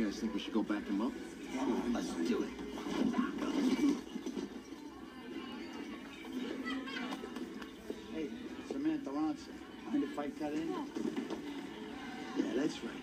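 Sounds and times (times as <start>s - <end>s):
background music from tv: 0.0s - 13.0s
indistinct voices from tv: 0.0s - 13.0s.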